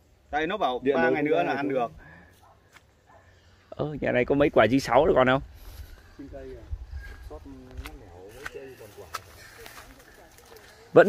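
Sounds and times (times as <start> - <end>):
distant voices talking: 6.0 - 11.0.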